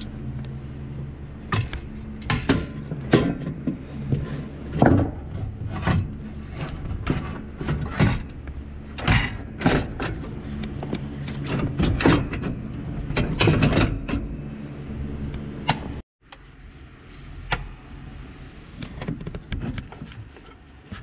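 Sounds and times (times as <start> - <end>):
metal knocks and clunks: 1.5 - 14.4.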